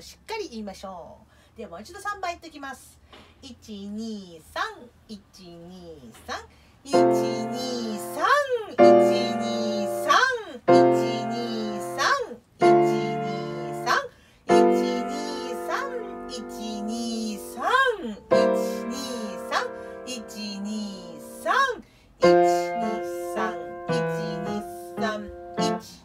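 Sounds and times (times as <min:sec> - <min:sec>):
piano chords: 0:06.9 - 0:21.6, 0:22.2 - 0:26.0.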